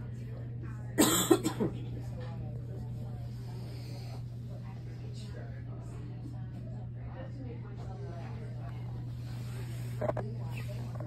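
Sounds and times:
woman coughing: 1.0 - 1.9.

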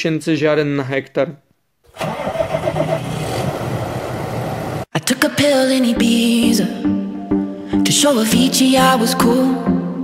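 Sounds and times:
tractor diesel engine running: 1.9 - 4.9.

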